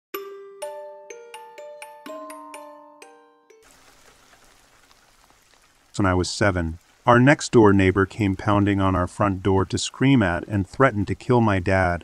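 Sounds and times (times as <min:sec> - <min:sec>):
soft steady rain: 0:03.6 - 0:12.0.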